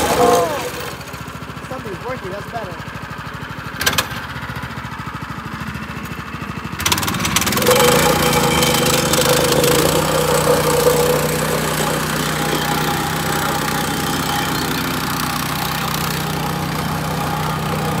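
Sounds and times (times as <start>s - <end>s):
plate compactor engine: 0.0s - 18.0s.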